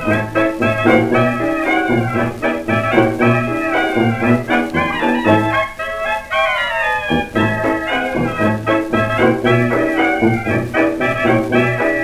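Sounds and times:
old dance band record: 0:00.0 - 0:12.0.

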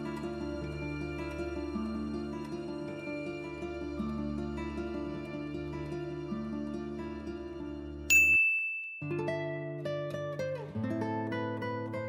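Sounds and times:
soft background music: 0:00.0 - 0:08.1
bright ding chime: 0:08.1 - 0:09.5.

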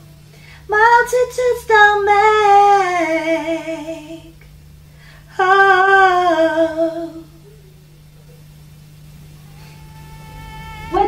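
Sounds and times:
woman singing unaccompanied: 0:00.7 - 0:04.4, 0:05.3 - 0:07.4, 0:09.8 - 0:11.0.

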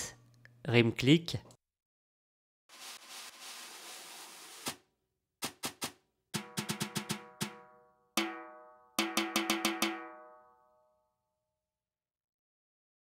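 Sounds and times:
brush swish on snare drum: 0:02.7 - 0:04.8
snare drum strokes with ring: 0:06.4 - 0:10.1.

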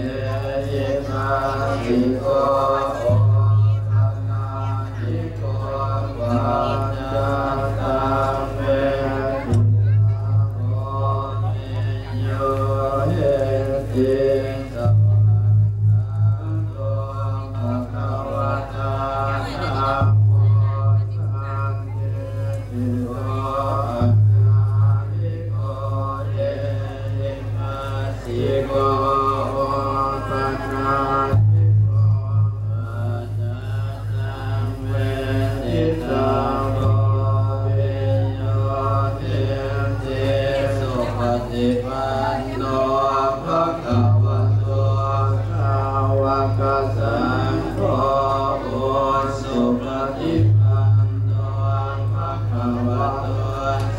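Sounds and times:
slow chanting: 0:00.0 - 0:53.9.

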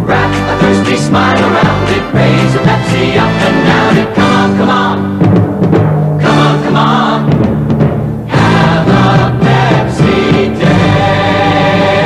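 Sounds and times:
choir and orchestra jingle: 0:00.0 - 0:05.3, 0:06.2 - 0:07.5, 0:08.3 - 0:12.0.

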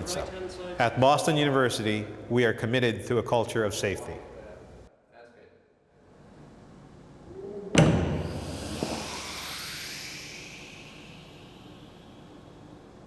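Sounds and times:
heavy metal door thudding shut: 0:07.8 - 0:08.4
hiss of air: 0:08.0 - 0:13.0.

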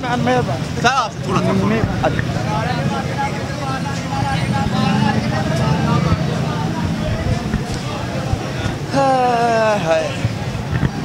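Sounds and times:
people talking: 0:00.0 - 0:11.0
traffic rumble: 0:00.0 - 0:11.0.

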